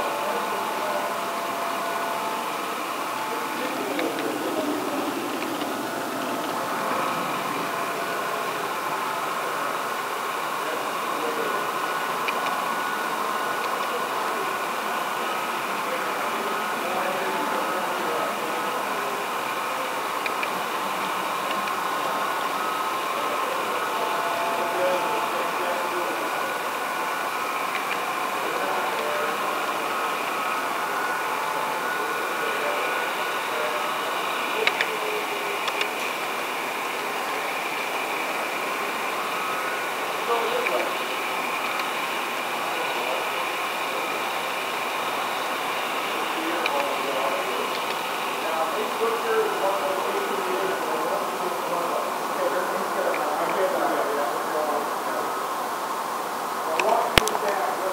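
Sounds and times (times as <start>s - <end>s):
model train motor whirring: 0.0s - 55.5s
faint clicks: 56.7s - 57.6s.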